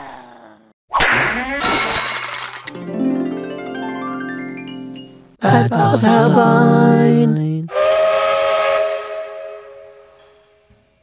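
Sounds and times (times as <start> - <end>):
hissing steam whistle: 7.7 - 10.7.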